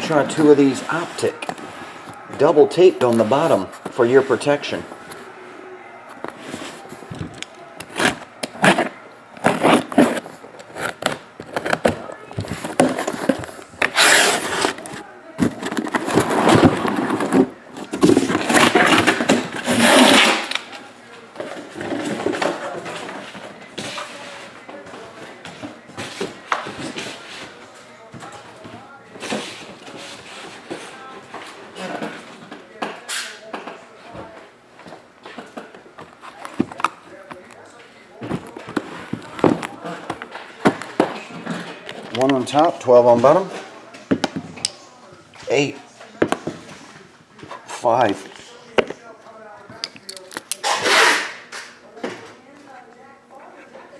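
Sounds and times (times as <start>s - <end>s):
cardboard and tape scraping rustling: 6.2s - 20.6s.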